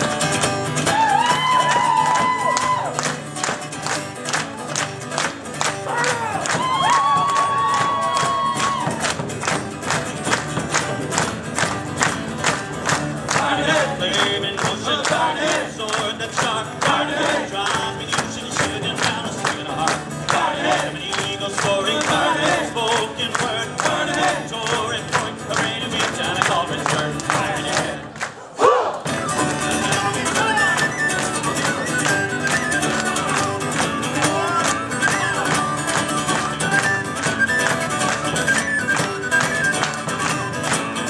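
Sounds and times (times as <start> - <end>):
folk-rock band playing: 0.0 - 28.3, 29.0 - 41.0
loud shout: 0.8 - 3.0, 5.8 - 9.2, 28.6 - 29.1
frame drum beat: 6.2 - 27.9.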